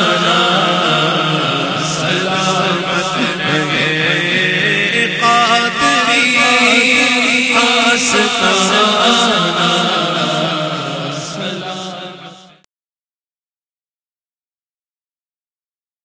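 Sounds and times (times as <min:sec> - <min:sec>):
low chanted drone: 0:00.0 - 0:12.6
man singing into microphone: 0:00.0 - 0:12.6.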